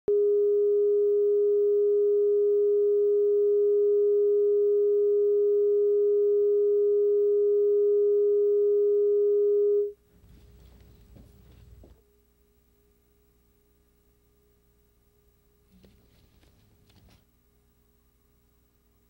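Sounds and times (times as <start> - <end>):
steady test tone: 0.1 - 10.0.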